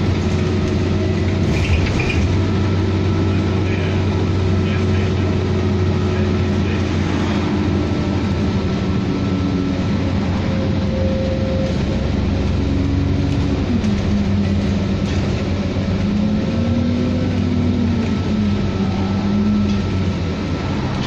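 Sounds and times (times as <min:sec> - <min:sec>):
bus engine rumble: 0:00.0 - 0:21.0
drivetrain whine: 0:00.0 - 0:21.0.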